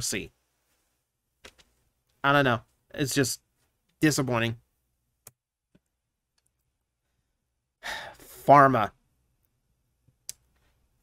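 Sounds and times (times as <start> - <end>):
person breathing: 7.0 - 8.4.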